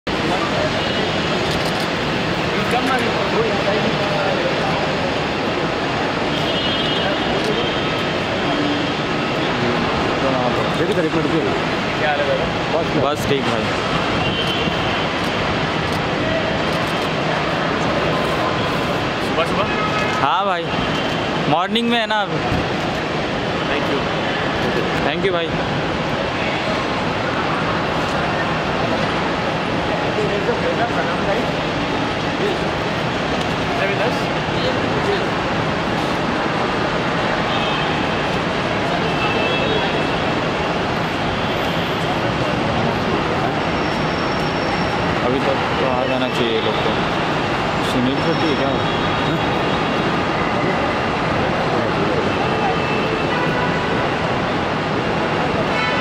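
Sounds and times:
traffic: 0:00.0 - 0:56.0.

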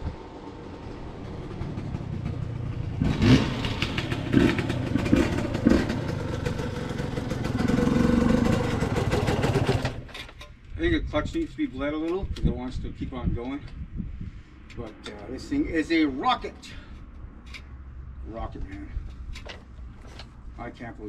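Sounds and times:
dirt bike engine revving: 0:03.0 - 0:10.0.

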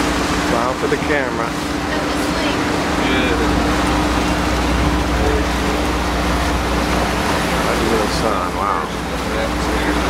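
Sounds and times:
boat engines droning: 0:00.0 - 0:10.0
water noise: 0:00.0 - 0:10.0
wind: 0:00.0 - 0:10.0.

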